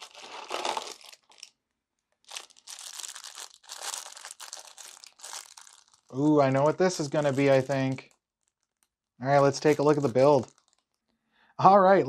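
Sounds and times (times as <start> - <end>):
plastic bag crinkling: 0.0 - 1.6, 2.2 - 11.0.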